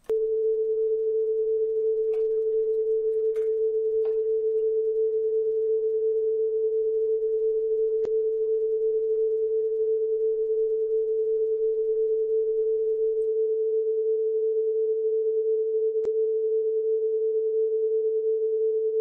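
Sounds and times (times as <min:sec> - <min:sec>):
steady pure tone: 0:00.0 - 0:16.1.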